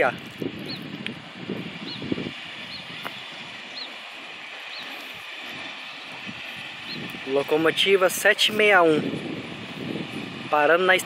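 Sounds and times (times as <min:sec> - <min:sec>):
steam locomotive hissing and running: 0:00.0 - 0:11.0.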